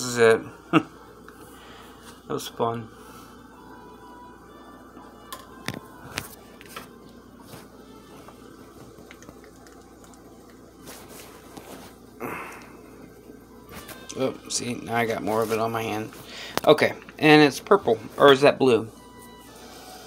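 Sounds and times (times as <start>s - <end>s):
quiet background music: 0.0s - 20.0s.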